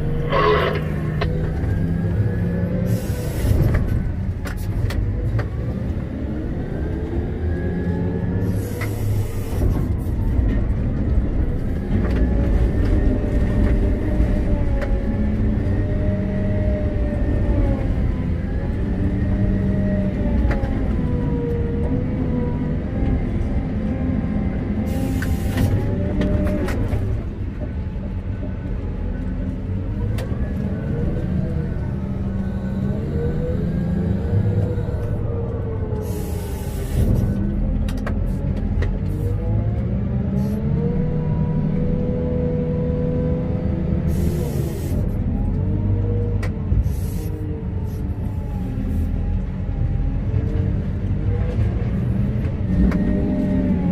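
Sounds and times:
hydraulic whine: 0.0s - 1.6s
diesel engine running under load: 0.0s - 53.9s.

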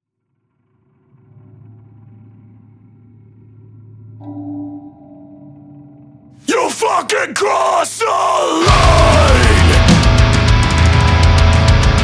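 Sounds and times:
low steady drone: 0.2s - 6.3s.

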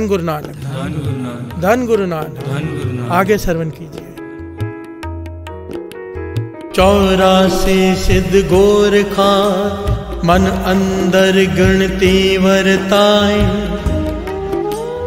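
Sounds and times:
man chanting melodically: 0.0s - 4.2s, 6.8s - 14.0s.

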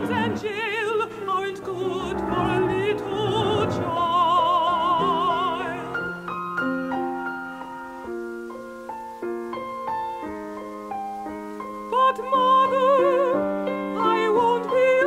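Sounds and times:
woman singing with vibrato: 0.0s - 6.2s, 11.9s - 15.0s
piano playing: 0.0s - 15.0s.

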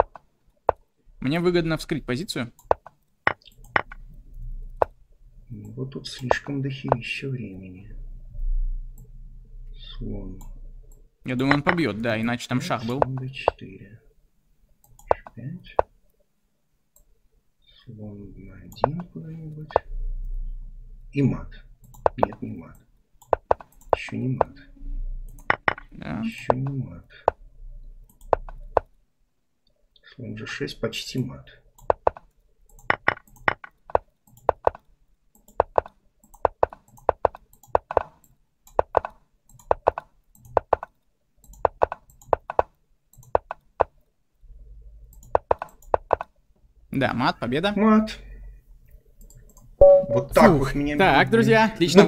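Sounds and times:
chess move clicks: 21.8s - 24.6s, 35.4s - 44.0s, 45.1s - 46.4s.

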